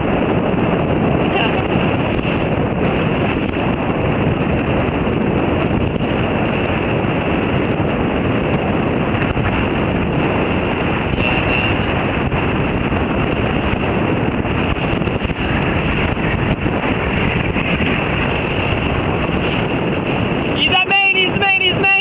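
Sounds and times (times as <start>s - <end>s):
choppy water: 0.0s - 22.0s
wind buffeting microphone: 0.0s - 22.0s.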